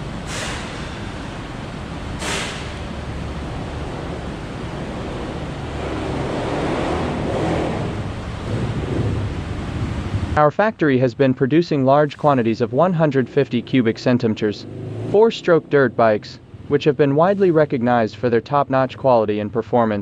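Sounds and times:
low rumble and hiss: 0.0s - 20.0s
brief hisses: 0.2s - 1.2s, 2.2s - 2.8s.

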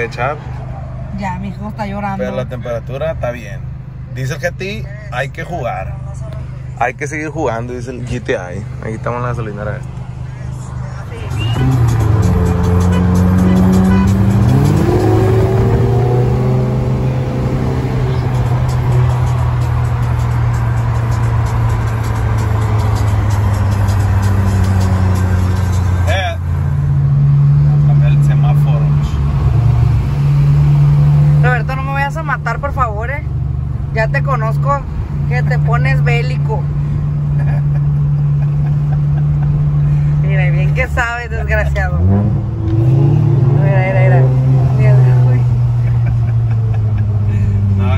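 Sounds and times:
voices: 0.0s - 15.2s, 37.4s - 42.2s
low engine hum: 0.0s - 47.9s
car engine accelerating: 8.1s - 47.9s.

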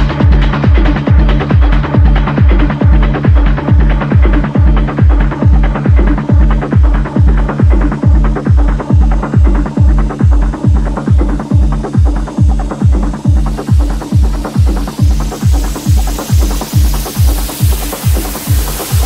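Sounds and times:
kick drum: 0.0s - 19.0s
synth bass line: 0.0s - 19.0s.

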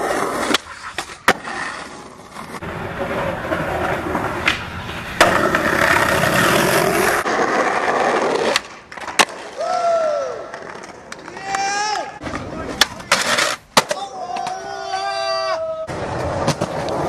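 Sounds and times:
skateboard wheels rolling on concrete: 0.0s - 17.0s
person shouting: 11.3s - 12.2s, 13.9s - 15.9s
skateboard clacks: 15.9s - 17.0s.

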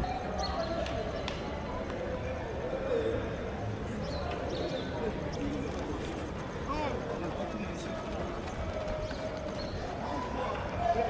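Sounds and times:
footsteps jogging on running track: 5.8s - 11.0s.

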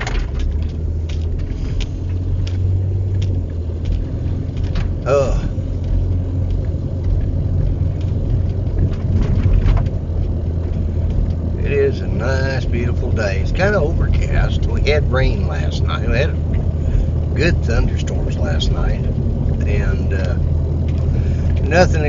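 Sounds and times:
engine and road rumble: 0.0s - 22.0s
person speaking: 5.0s - 5.6s, 17.3s - 20.5s
short vocal sound: 5.1s - 5.6s.

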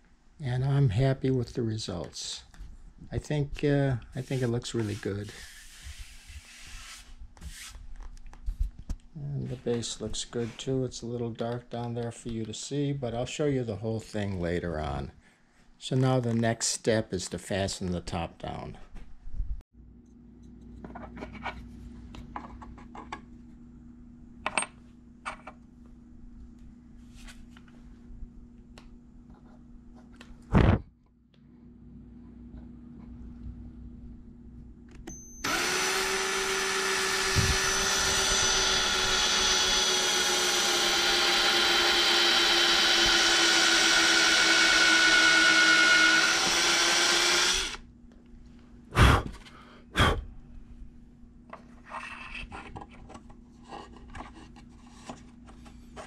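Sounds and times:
power drill driving screws: 35.1s - 47.8s.

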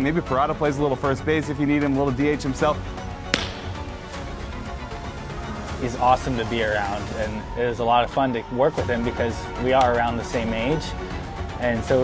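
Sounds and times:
background music: 0.0s - 12.0s
baseball hitting a mitt: 3.3s - 4.6s.

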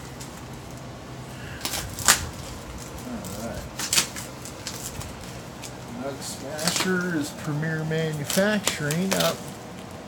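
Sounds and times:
knife cutting crinkling plastic wrap: 1.6s - 9.6s.

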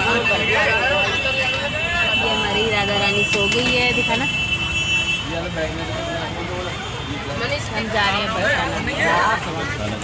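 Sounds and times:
bus engine and road rumble: 0.0s - 10.0s
voices talking: 0.0s - 10.0s.

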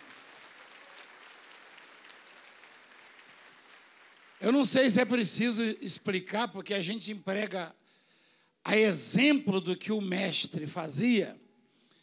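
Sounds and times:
scattered clapping: 0.0s - 4.8s
crowd noise in a big hall: 0.0s - 5.2s.

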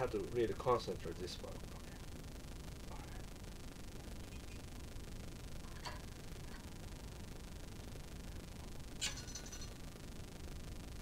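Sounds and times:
high metallic ring: 9.0s - 9.8s.

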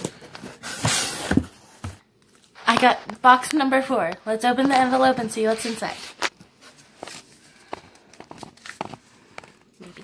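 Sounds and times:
paper envelope crackles and taps: 7.0s - 9.7s.

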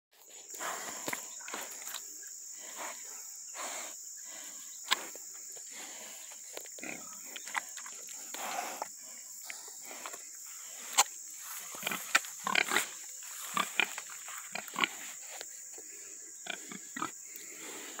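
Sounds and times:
pigs grunting and snuffling: 0.2s - 18.0s
pig snorts: 9.5s - 15.2s.

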